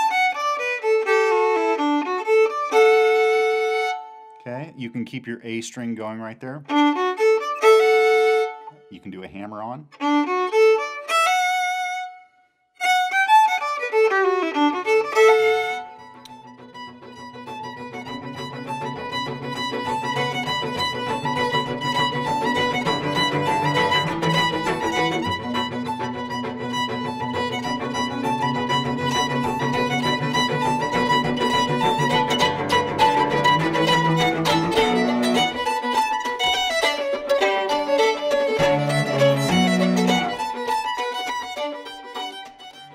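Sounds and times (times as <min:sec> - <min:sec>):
solo fiddle playing: 0:00.0 - 0:42.9.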